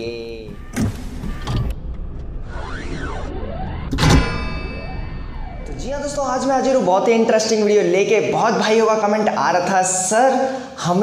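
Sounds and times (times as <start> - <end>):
mechanical whirring: 0.6 - 6.8
sharp metallic hits: 0.8 - 7.6.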